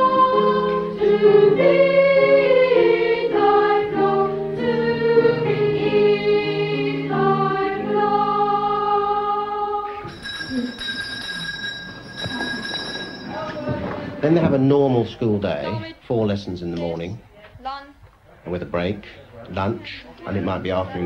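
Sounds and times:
boys choir singing unaccompanied: 0.0 - 10.2
faint steady high tone: 10.0 - 14.0.

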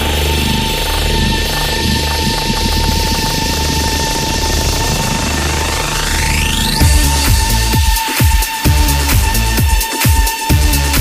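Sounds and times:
trance synth music: 0.0 - 11.0.

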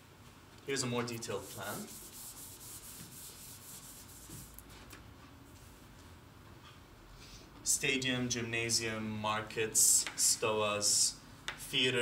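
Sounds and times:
faint rubbing strokes: 1.2 - 4.6.

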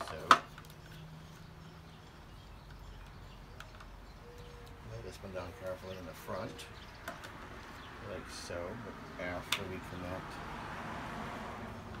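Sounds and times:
man speaking: 4.8 - 6.8.

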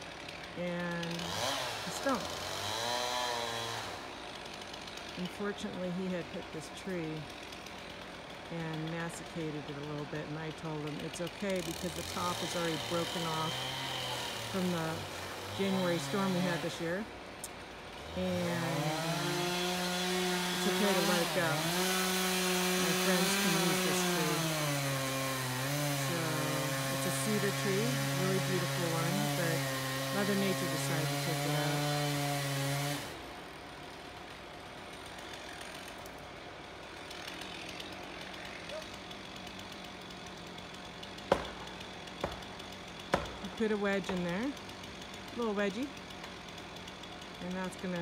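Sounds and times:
chainsaw cutting through wood: 0.0 - 48.0.

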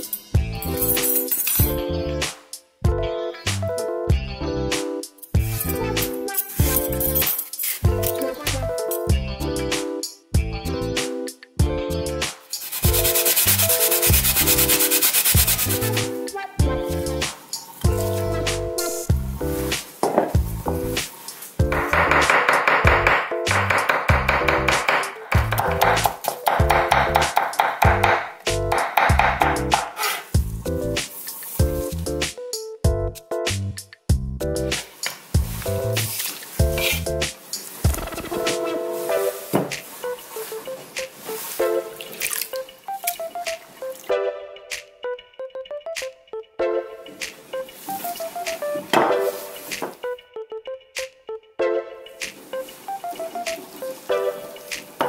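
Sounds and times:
light plucked background music: 0.0 - 55.0
potato grated on box grater: 12.6 - 15.9
water splashing in a bowl: 42.0 - 44.1.

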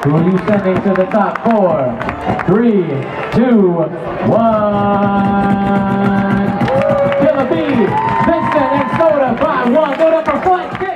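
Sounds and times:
music with steady beat: 4.2 - 10.9.

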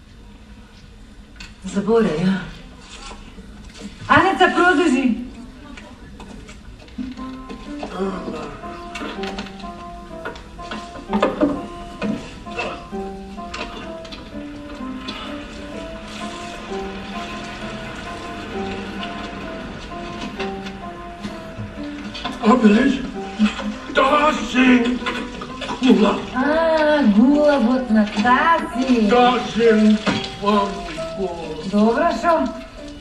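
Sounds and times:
film score music over speakers: 6.8 - 33.0.

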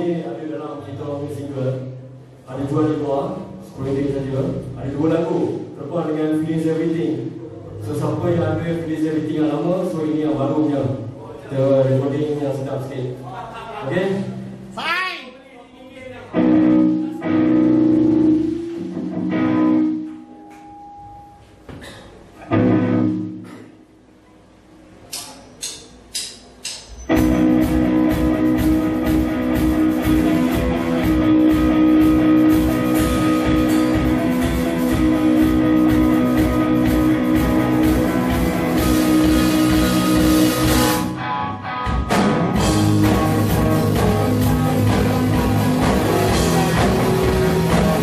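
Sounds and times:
rock band playing: 16.3 - 20.4, 22.5 - 23.5, 27.1 - 48.0.

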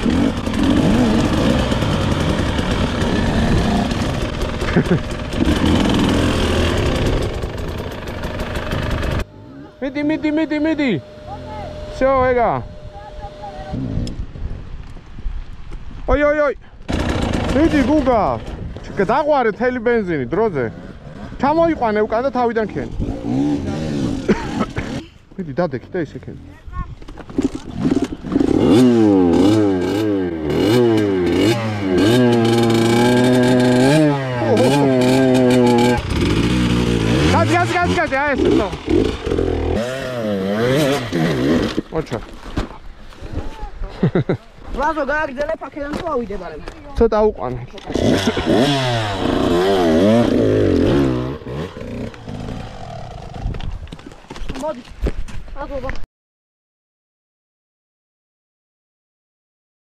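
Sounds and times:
dirt bike engine revving: 0.0 - 14.2, 16.9 - 19.3, 20.4 - 25.1, 27.4 - 41.9, 47.8 - 53.5.

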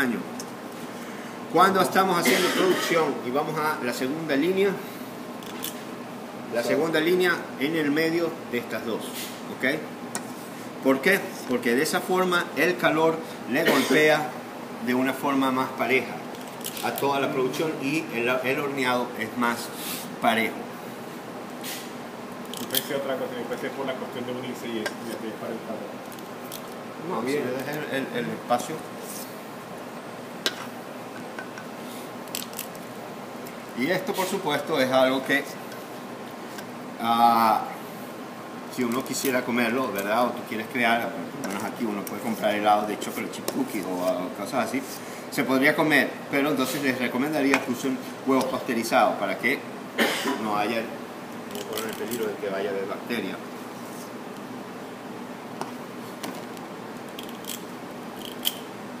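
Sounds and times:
kitchen room noise: 0.0 - 59.0.

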